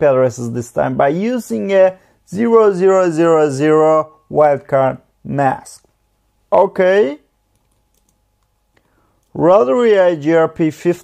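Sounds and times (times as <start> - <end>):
person speaking: 0.0 - 8.2, 9.2 - 11.0
keyboard typing: 7.5 - 8.6.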